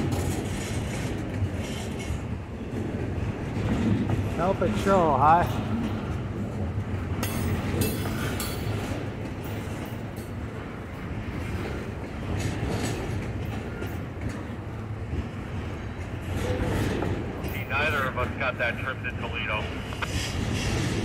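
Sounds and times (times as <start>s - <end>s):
sharp clacks of train wheels: 0.0s - 21.0s
train wheels rumbling on rails: 0.0s - 21.0s.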